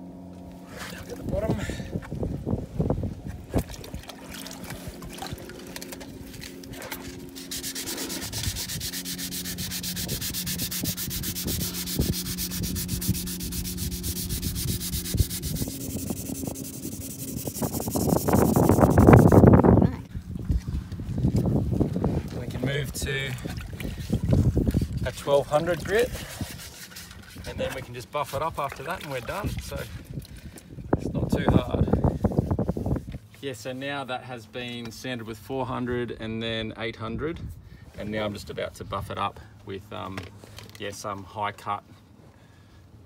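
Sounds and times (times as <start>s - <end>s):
low rubbing noise: 4.7s - 19.9s
hand sanding scratching: 6.8s - 19.7s, 23.9s - 30.0s.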